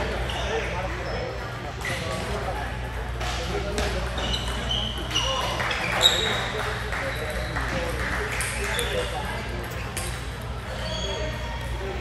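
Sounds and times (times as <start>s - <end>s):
steady hall hum: 0.0s - 12.0s.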